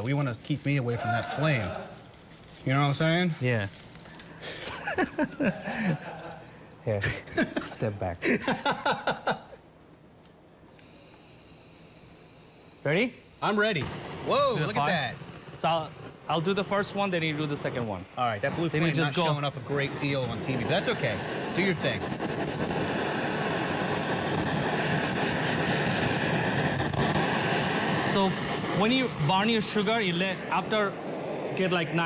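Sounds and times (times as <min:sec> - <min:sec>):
butane torch hissing: 0:00.0 - 0:09.6, 0:10.6 - 0:32.0.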